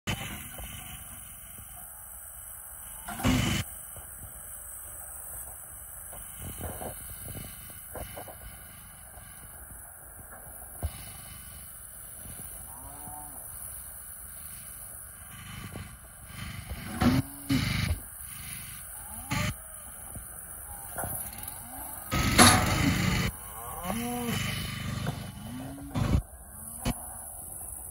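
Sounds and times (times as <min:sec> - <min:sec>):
loud burst of noise: 0:00.1 - 0:12.7, 0:13.4 - 0:27.9
cattle bellowing: 0:12.2 - 0:14.5, 0:15.3 - 0:27.9
metal gates clanking: 0:22.1 - 0:23.3.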